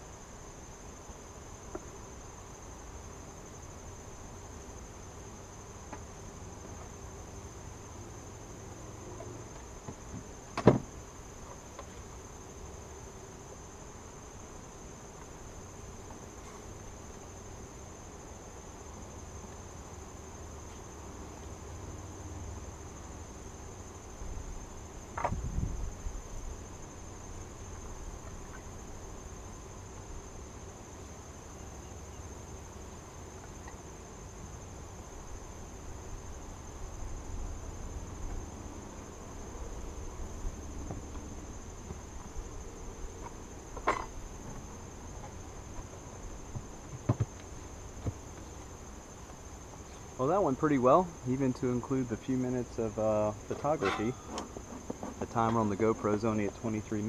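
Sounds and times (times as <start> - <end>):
crickets trilling: 0.0 - 57.0
honeybees humming: 0.0 - 57.0
wooden hive parts knocking: 43.7 - 49.8.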